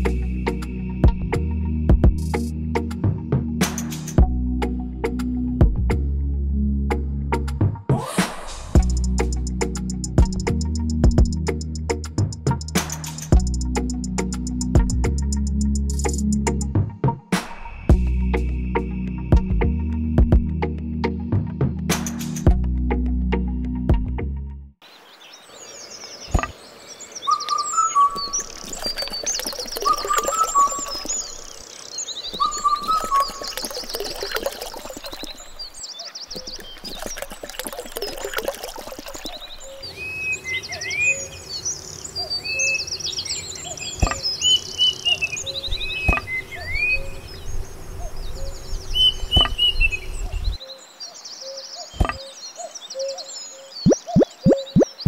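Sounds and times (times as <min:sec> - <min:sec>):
birds chirping and trilling: 0:24.8 - 0:55.0.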